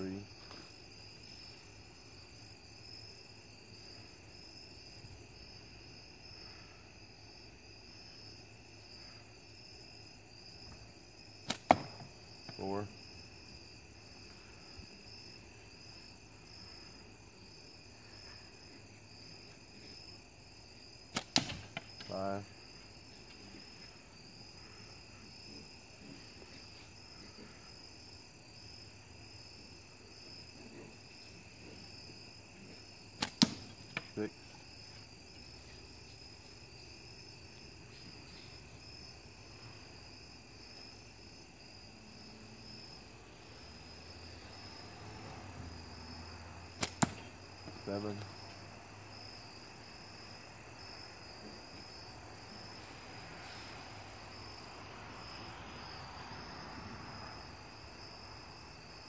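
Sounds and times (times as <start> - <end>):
crickets chirping: 0.0 - 59.0
slingshot bands snapping: 21.1 - 21.8, 33.2 - 34.1, 46.8 - 47.3.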